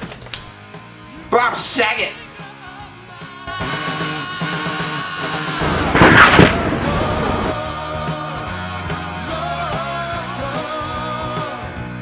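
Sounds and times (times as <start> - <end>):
rock music: 0.5 - 12.0
loud blast: 5.3 - 8.0.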